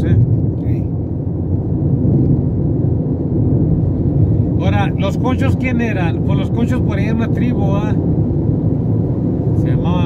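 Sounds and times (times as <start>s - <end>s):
car driving at highway speed: 0.0s - 10.0s.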